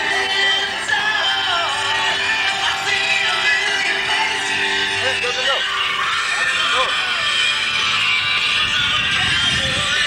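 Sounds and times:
rock music on car radio: 0.0 - 10.0.

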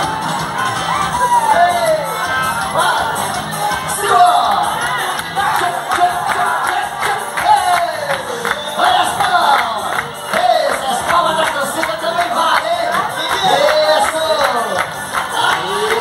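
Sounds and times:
crowd noise: 0.0 - 16.0
dance music with singing: 0.0 - 16.0.

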